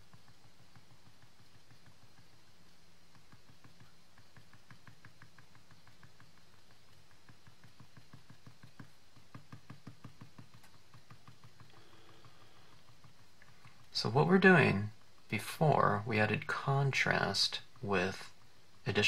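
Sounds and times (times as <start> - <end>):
tool tip tapping on cardstock: 3.1 - 13.8.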